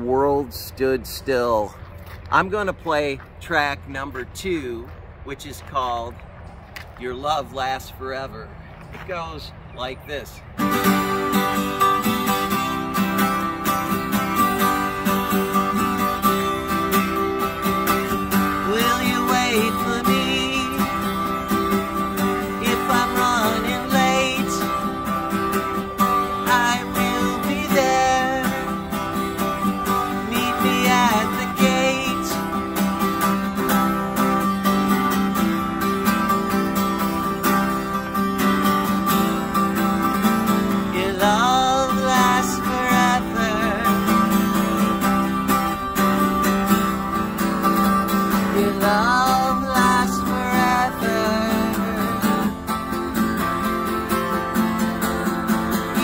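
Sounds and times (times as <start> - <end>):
acoustic guitar strummed: 10.5 - 56.0.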